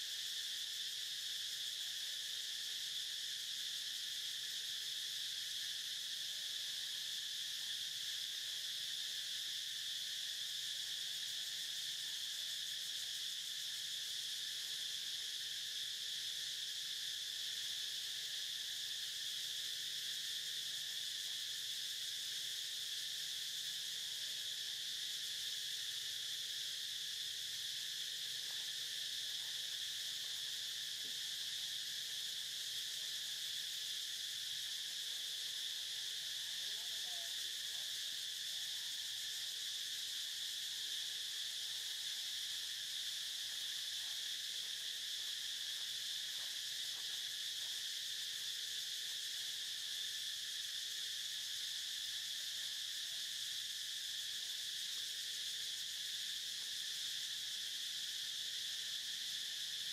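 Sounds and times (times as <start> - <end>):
high-pitched insect chorus: 0.0 - 59.9.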